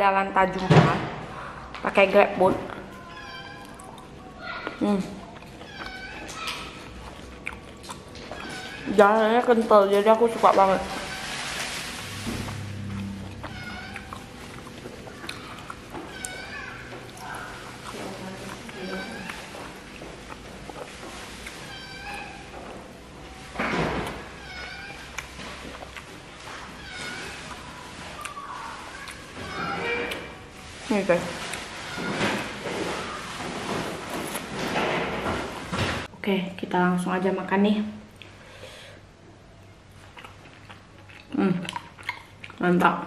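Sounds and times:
wet chewing and mouth sounds: 2.6 - 34.6, 38.1 - 38.5, 39.8 - 43.0
cat meowing: 13.3 - 14.2, 24.4 - 25.2.

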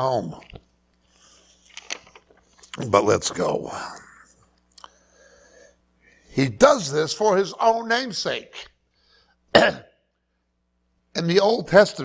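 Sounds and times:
man coughing: 9.5 - 10.0.

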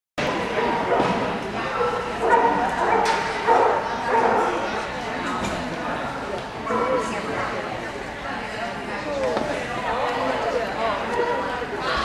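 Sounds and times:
dog barking: 0.6 - 4.6.

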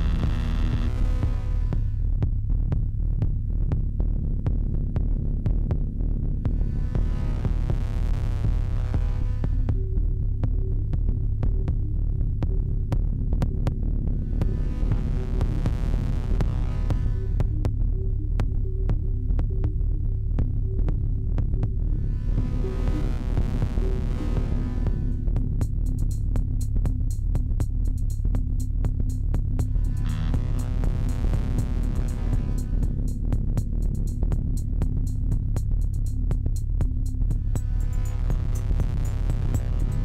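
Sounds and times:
throbbing synthesizer bass drone: 0.0 - 40.0
pulsing mid-pitched tone: 29.6 - 36.2, 37.2 - 40.0.

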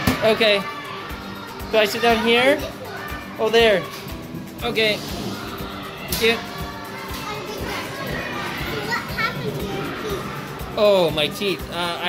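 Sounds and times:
children playing and calling out: 0.0 - 11.8.

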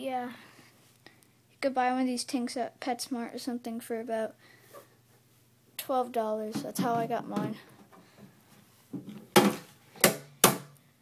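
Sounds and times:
sharp knocks on glass tank: 9.4 - 10.7.

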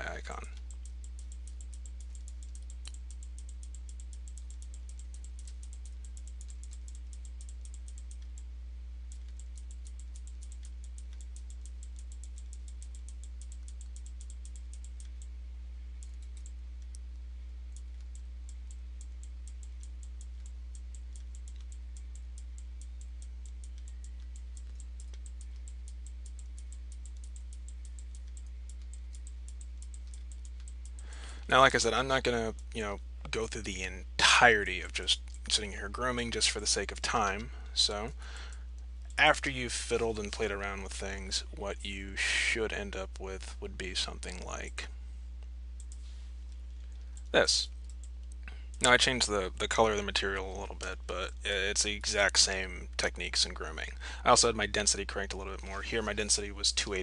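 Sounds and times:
low electrical hum: 0.0 - 57.0
mouse and keyboard clicking: 0.6 - 8.4, 9.1 - 15.3.

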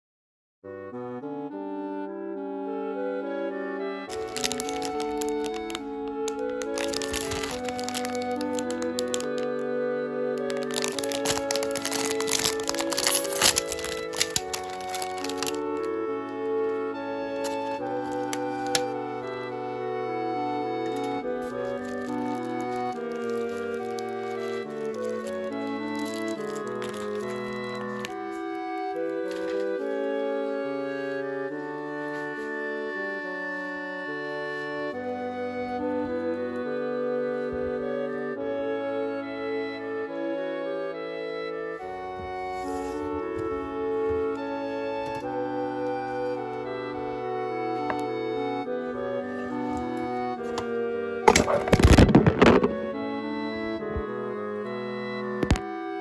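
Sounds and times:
background music: 0.6 - 56.0
plastic wrapper crinkling: 4.1 - 9.7, 10.4 - 16.0, 17.4 - 19.0, 20.8 - 29.8, 50.4 - 52.9.

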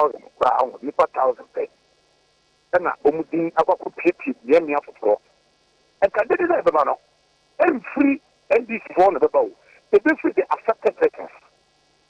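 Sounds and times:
man talking over telephone: 0.0 - 1.7, 2.7 - 5.2, 6.0 - 7.0, 7.6 - 11.5.

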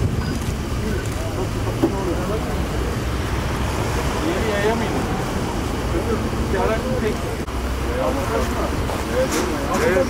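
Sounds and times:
low rumble of motor vehicles: 0.0 - 10.0
people talking: 0.6 - 10.0.

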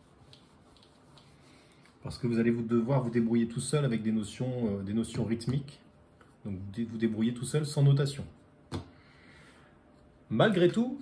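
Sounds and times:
cloth wiping a whiteboard: 0.0 - 6.7.

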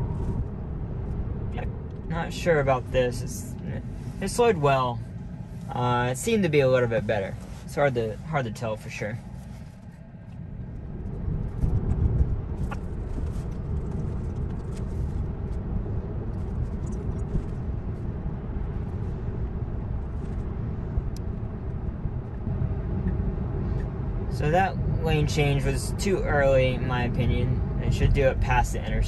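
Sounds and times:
road and tyre noise in car: 0.0 - 29.0.

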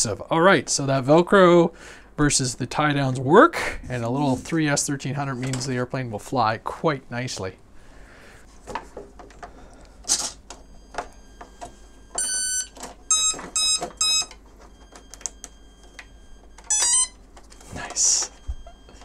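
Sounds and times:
electronic beeps from motor: 10.5 - 19.0.

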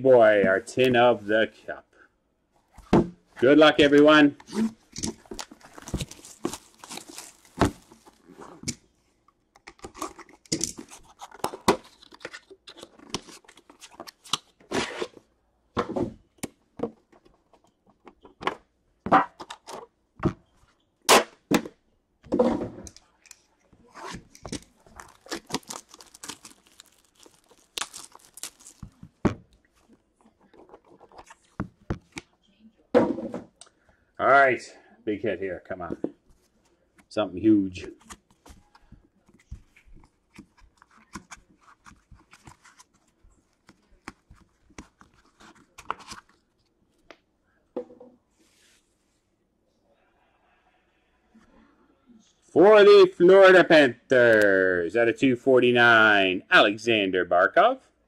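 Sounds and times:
plastic crinkling: 5.1 - 8.4, 24.1 - 31.9
plastic wrap tearing: 5.2 - 8.3, 24.1 - 29.2.

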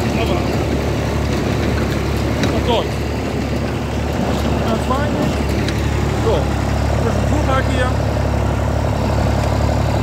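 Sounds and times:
baler working: 0.0 - 10.0
tractor engine running: 0.0 - 10.0.

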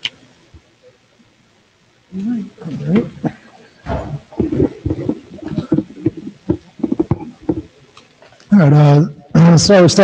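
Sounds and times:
person making wordless vocal sounds: 4.1 - 7.7.

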